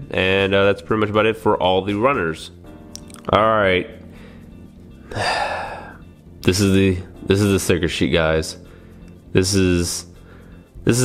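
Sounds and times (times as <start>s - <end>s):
quiet background music: 0.0s - 11.0s
man sighing heavily: 5.0s - 6.0s.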